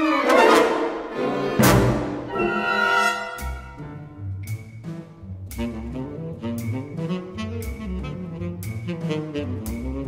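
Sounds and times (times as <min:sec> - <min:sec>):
orchestra playing accented chords: 0:00.0 - 0:10.0.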